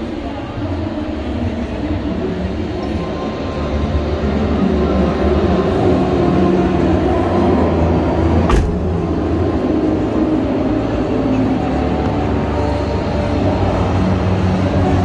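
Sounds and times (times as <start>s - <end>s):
echoing crowd din: 0.0s - 15.0s
sharp knock: 8.5s - 8.8s.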